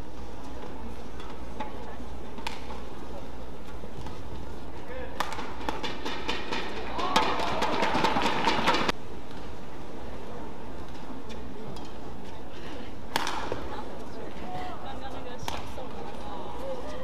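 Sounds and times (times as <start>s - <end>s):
racket hitting shuttlecock: 5.2s - 9.4s, 13.1s - 13.6s
crowd clapping: 6.9s - 8.9s.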